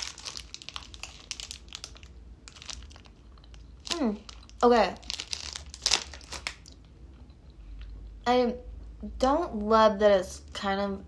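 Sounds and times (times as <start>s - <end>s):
plastic wrapper crinkling: 0.0s - 6.9s.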